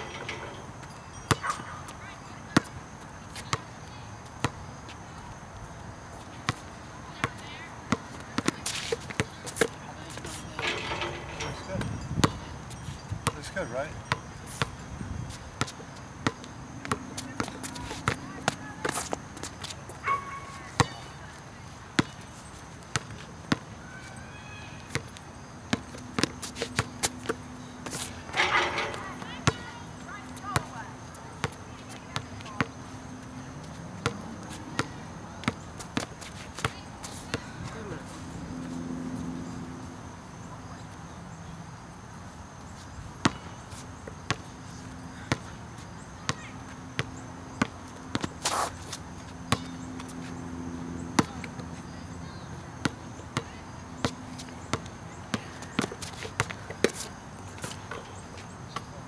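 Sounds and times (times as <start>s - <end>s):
basketball bouncing on asphalt: 0.0s - 2.8s, 6.5s - 21.1s, 22.9s - 37.9s, 43.2s - 44.5s, 46.2s - 58.9s.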